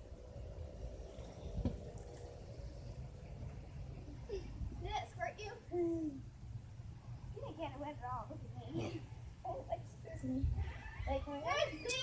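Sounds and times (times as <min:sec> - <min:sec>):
thump: 0:01.6 - 0:01.8.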